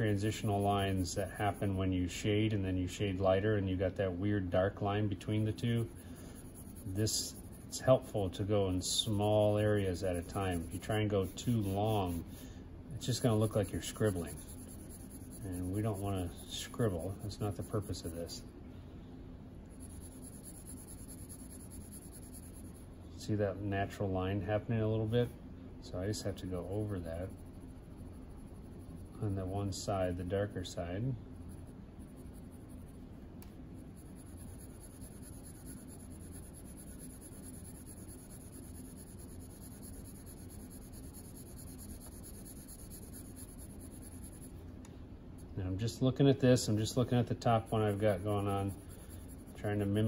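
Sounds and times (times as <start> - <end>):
pencil scratching on paper: 0.0 - 1.8, 5.3 - 12.4, 13.0 - 18.4, 19.7 - 22.9, 26.4 - 30.3, 31.3 - 33.0, 33.8 - 44.6, 46.6 - 50.0.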